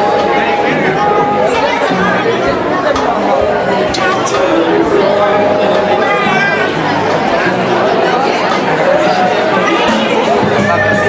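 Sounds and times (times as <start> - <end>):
babble of conversation: 0.0 - 11.0.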